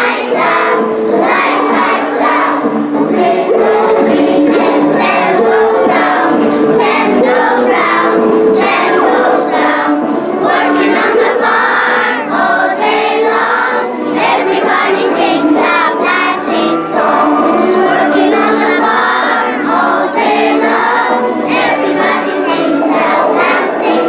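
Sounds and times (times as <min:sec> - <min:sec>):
children's choir singing: 0:00.0 - 0:24.0.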